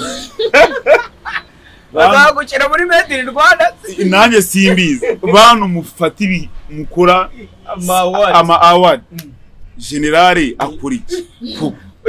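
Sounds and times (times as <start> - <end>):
loud high wavering laughter: 0.0 - 1.5.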